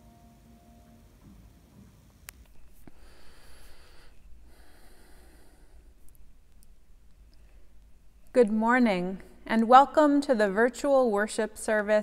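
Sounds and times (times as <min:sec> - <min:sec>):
person breathing: 0:02.8 - 0:06.1.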